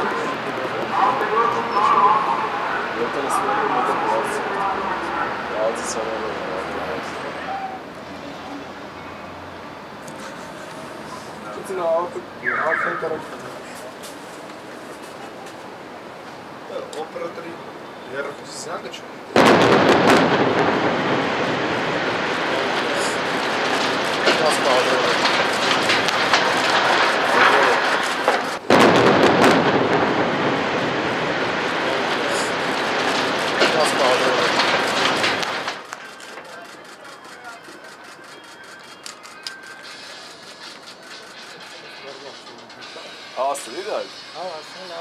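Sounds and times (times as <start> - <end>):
faint distant voices: 0.0 - 19.4, 31.6 - 45.0
building collapsing rumble: 19.4 - 35.9.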